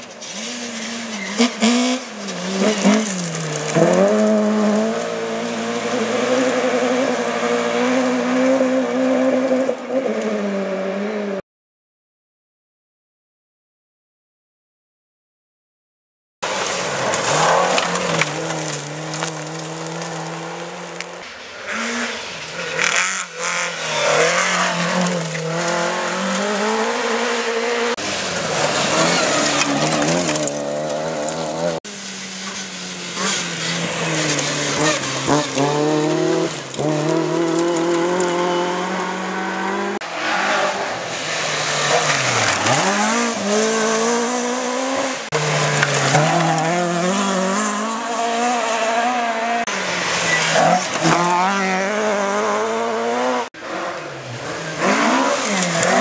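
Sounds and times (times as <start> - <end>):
rally car engine revving: 0.0 - 11.4, 16.4 - 56.0.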